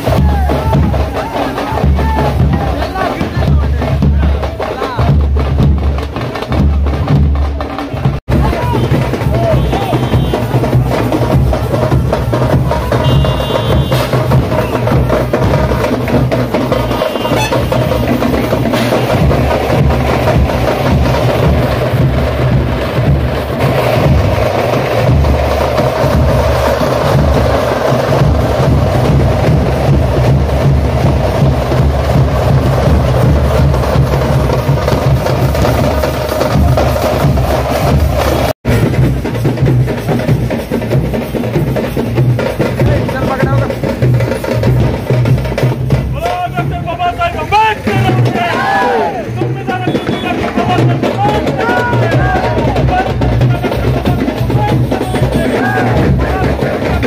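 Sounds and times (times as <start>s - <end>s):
music with heavy drumming: 0.0s - 57.0s.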